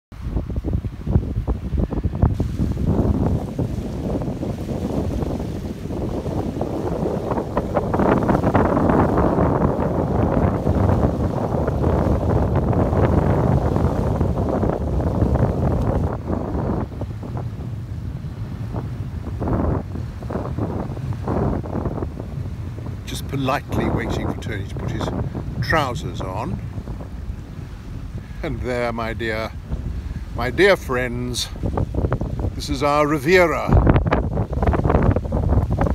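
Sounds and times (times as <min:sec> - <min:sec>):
wind buffeting microphone: 0:00.1 - 0:35.9
waves lapping on sand: 0:00.2 - 0:35.9.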